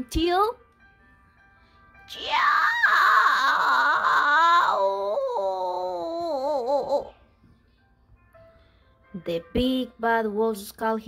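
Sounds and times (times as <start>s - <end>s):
cartoon cry of pain: 2.1s - 7.1s.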